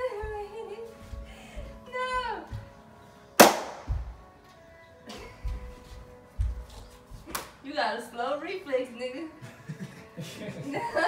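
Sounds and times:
sharp crack with ringing tail: 3.4 - 3.9.

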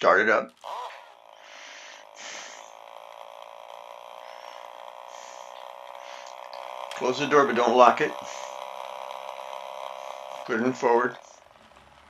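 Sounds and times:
toy car electric motor humming: 0.5 - 12.0.

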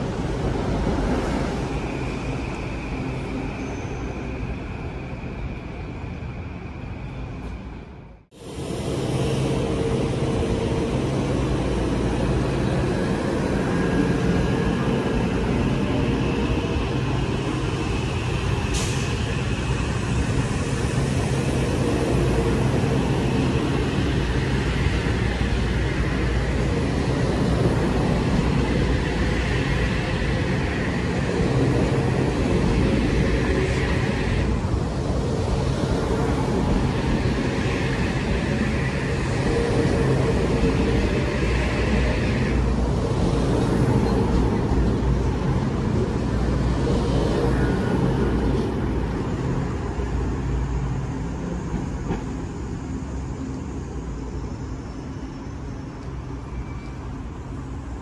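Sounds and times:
train electrical hum: 0.0 - 58.0.

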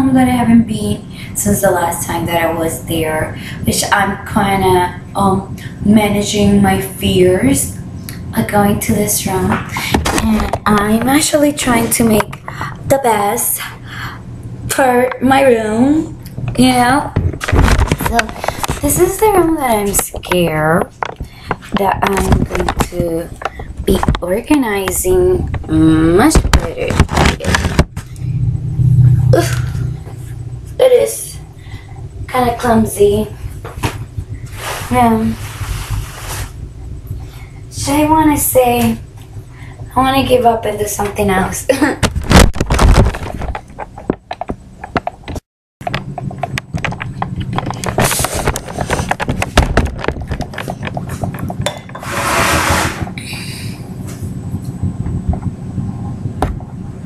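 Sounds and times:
steady low hum: 0.0 - 57.0
handheld camera scraping: 46.4 - 53.2.

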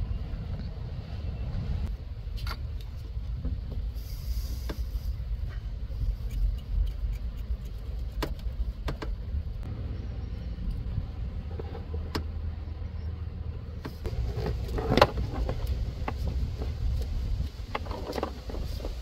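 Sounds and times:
low rumble: 0.0 - 19.0.

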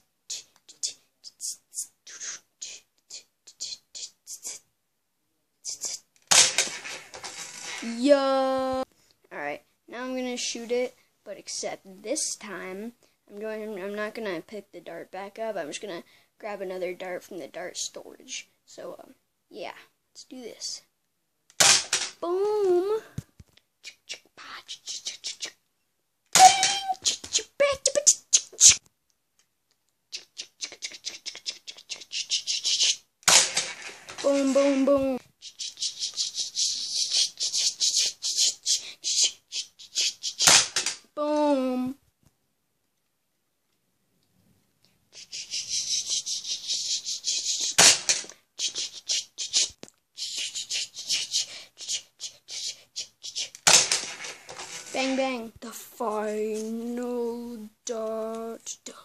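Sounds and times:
breathy whispering: 0.3 - 4.7, 23.8 - 25.6, 45.1 - 47.8, 48.4 - 53.6, 58.6 - 59.0
toy blaster pop: 6.3 - 7.7, 21.6 - 22.2, 26.3 - 26.9, 33.2 - 34.7, 40.4 - 41.0, 47.6 - 48.3, 53.6 - 54.4.

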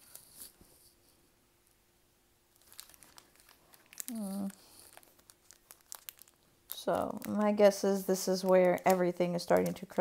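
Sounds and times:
foil wrapper crinkling: 2.5 - 10.0.

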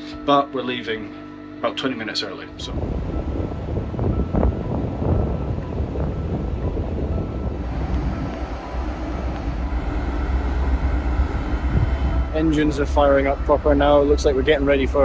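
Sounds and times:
wind buffeting microphone: 2.6 - 15.0
diesel engines rumbling: 2.7 - 15.0.

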